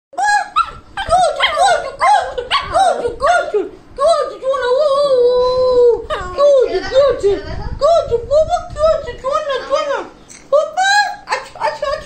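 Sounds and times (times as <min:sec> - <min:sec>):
dog barking high-pitched: 0:00.2 - 0:03.0.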